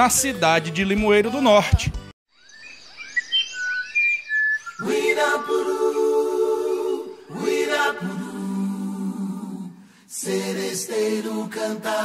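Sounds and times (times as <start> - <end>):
birdsong whistled chirping: 2.3 - 7.8
a cappella vocal group singing: 4.8 - 12.0.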